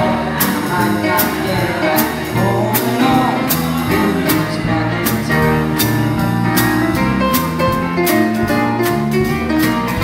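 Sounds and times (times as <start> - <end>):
drum kit beat: 0.0 - 10.0
electric bass guitar: 0.0 - 10.0
electric keyboard chords: 0.0 - 10.0.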